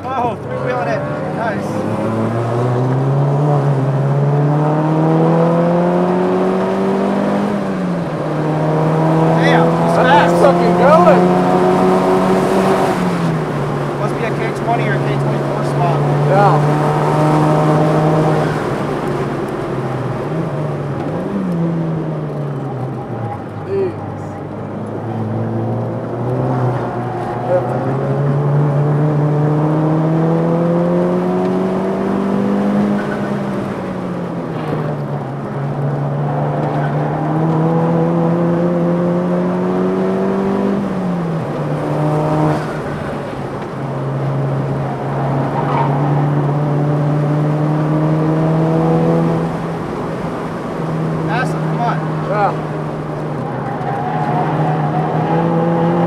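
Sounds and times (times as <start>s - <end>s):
car engine at high revs: 0.0s - 56.0s.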